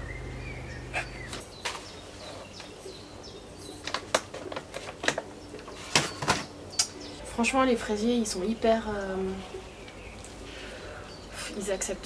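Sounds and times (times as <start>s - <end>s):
low steady hum: 0.0s - 4.0s, 4.8s - 12.0s.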